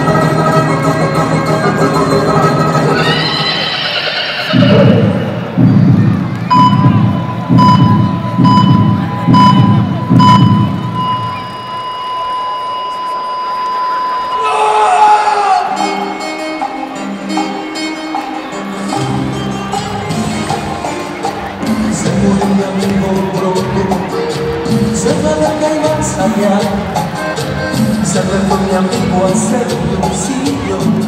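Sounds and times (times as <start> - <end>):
music: 0.0 - 31.0
heartbeat thumping: 5.6 - 11.1
flatline tone: 6.5 - 14.5
heart monitor beeps: 6.5 - 14.5.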